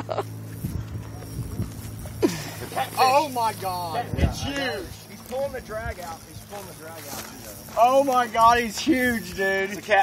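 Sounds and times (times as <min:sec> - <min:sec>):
man laughing: 0:00.0 - 0:00.4, 0:02.2 - 0:03.3
low hum: 0:00.0 - 0:10.0.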